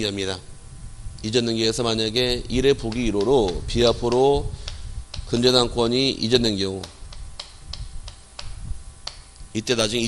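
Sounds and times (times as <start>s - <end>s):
chalk tapping on chalkboard: 2.6s - 5.6s, 6.4s - 9.3s.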